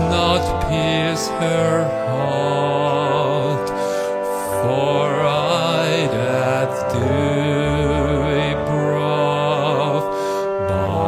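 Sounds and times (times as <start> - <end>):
harmonium playing chords: 0.0 - 11.0
man singing with vibrato: 0.0 - 11.0.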